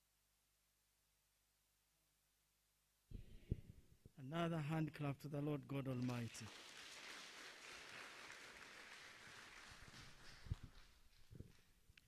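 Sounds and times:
congregation applauding: 5.9s - 11.8s.

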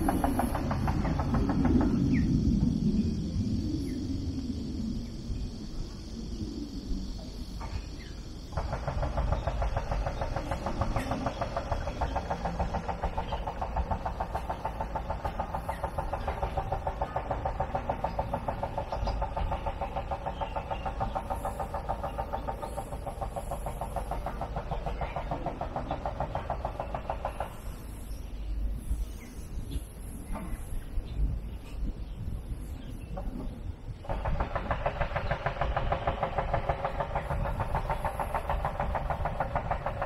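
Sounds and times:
cicada buzzing: 0.0s - 40.0s.

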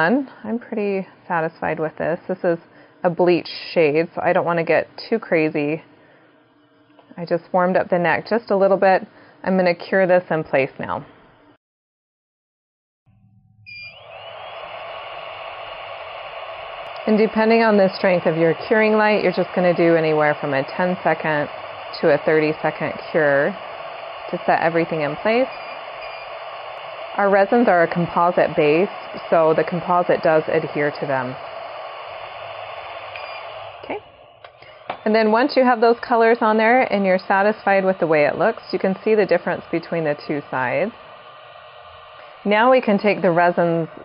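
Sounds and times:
curing light fan whirring: 0.0s - 11.6s, 13.7s - 44.0s
short beep: 13.2s - 14.0s, 33.2s - 33.5s.

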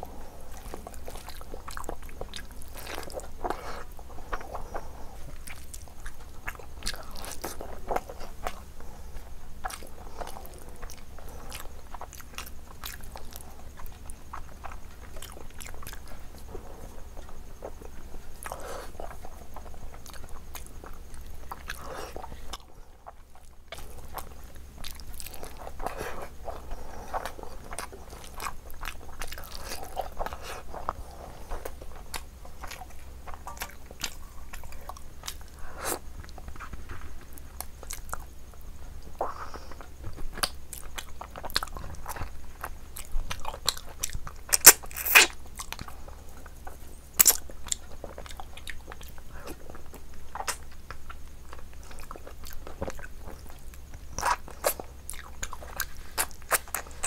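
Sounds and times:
wet chewing and lip smacking: 0.4s - 57.0s.

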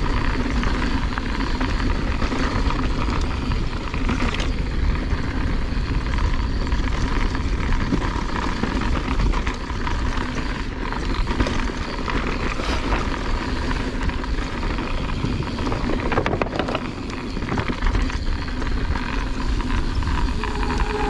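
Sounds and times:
bike rattling over bumps: 0.0s - 21.0s
tyres crunching over gravel: 0.0s - 21.0s
wind buffeting microphone: 0.0s - 21.0s.

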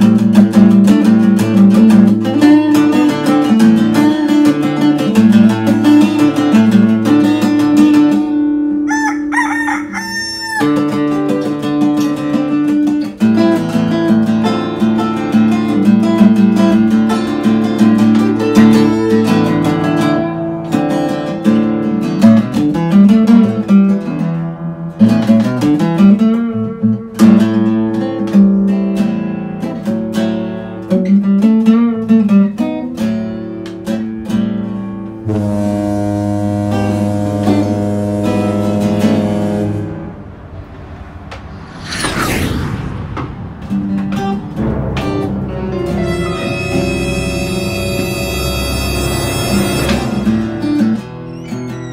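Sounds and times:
acoustic guitar strumming: 0.0s - 9.1s, 10.7s - 41.0s, 44.0s - 51.9s
rooster crowing: 8.8s - 11.0s.

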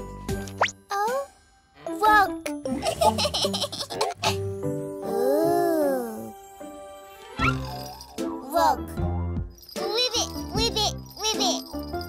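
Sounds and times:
light children's music: 0.0s - 12.0s
cartoon baby giggling: 2.8s - 4.4s.

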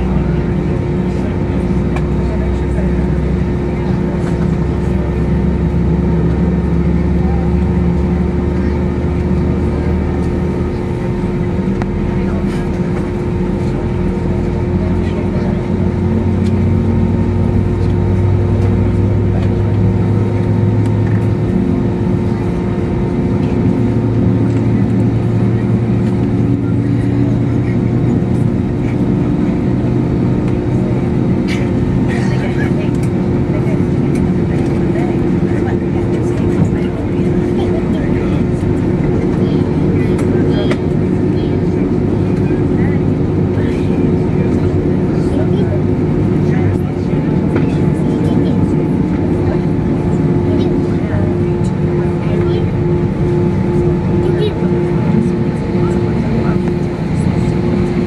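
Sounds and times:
jet engines droning: 0.0s - 58.0s.

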